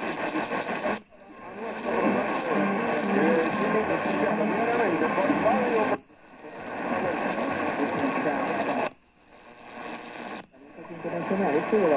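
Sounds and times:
person speaking on radio: 0.0s - 8.9s, 9.8s - 11.9s
radio static: 0.0s - 11.9s.

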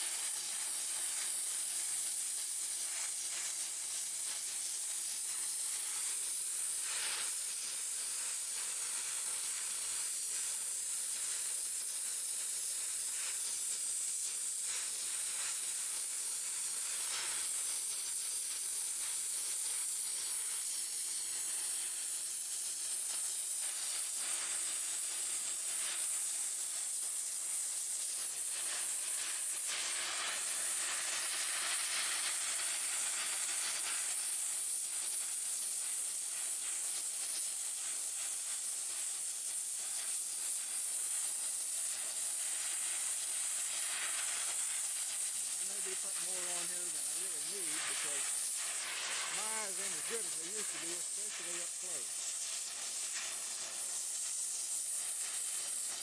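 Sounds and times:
gas torch flame hissing: 0.0s - 56.0s.

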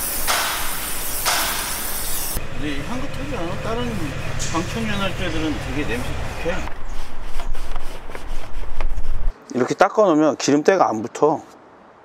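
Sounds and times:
steady low hum: 2.4s - 7.3s
cloth wiping plastic: 5.8s - 9.3s.

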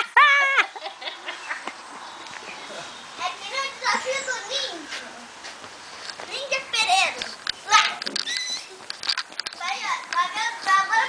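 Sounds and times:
young children calling and squealing: 0.0s - 11.0s
child's shrill cry: 7.7s - 8.7s.

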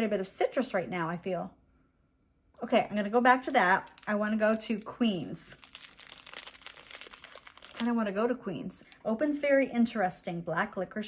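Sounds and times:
woman's voice: 0.0s - 1.6s, 2.6s - 5.6s, 7.7s - 11.0s
wrapper crinkling: 2.9s - 8.2s.

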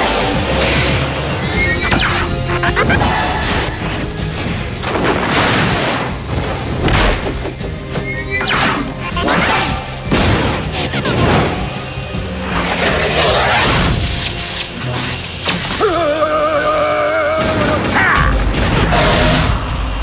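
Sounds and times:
dramatic action music: 0.0s - 20.0s.

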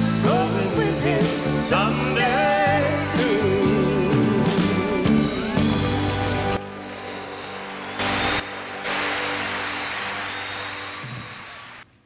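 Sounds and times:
orchestra closing chord: 6.0s - 11.4s
audience applause: 7.3s - 11.9s.

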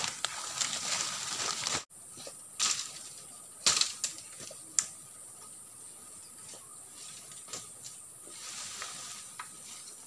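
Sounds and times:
dry leaves and twigs crackling: 0.0s - 10.0s
steady high hiss: 1.2s - 10.0s.

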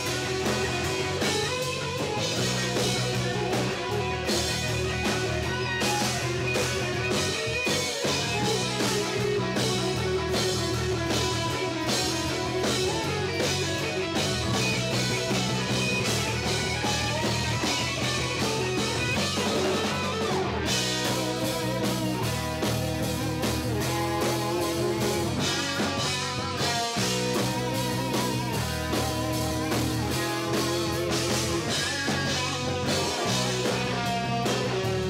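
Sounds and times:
electric guitars playing rock: 0.0s - 35.0s
steady beat: 0.0s - 35.0s.

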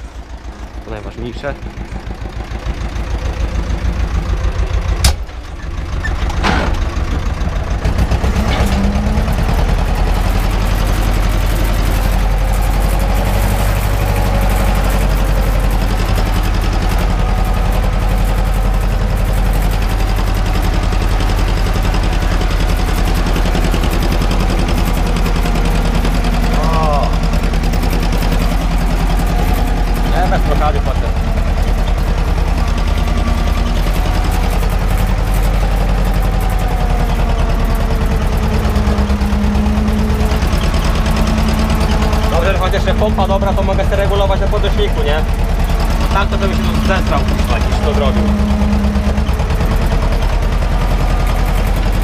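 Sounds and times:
tractor diesel engine: 0.0s - 52.0s.

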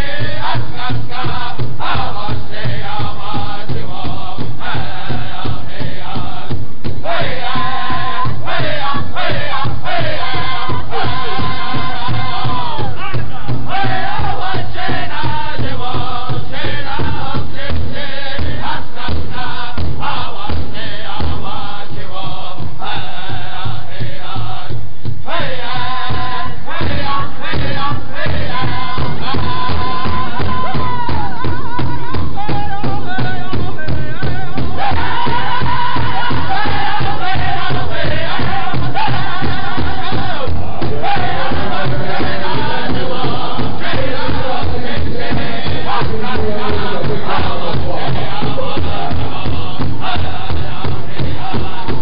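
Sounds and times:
large drum fast steady beat: 0.0s - 52.0s
men singing in high voices: 0.0s - 52.0s.

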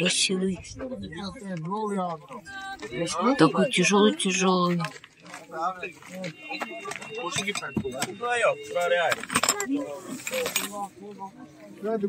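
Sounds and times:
glassware clinking: 6.8s - 8.2s, 8.9s - 10.9s.

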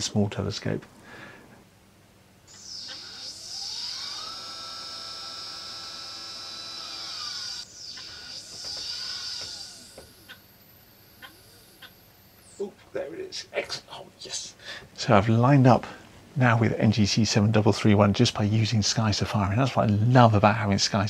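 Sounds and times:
telescope mount motor whine: 2.4s - 12.7s.

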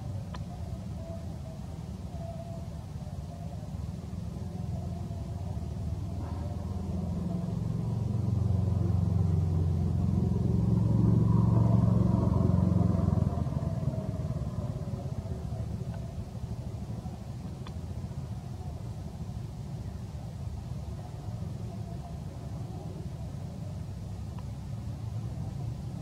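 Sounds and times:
vehicle engine passing by: 5.8s - 16.0s.

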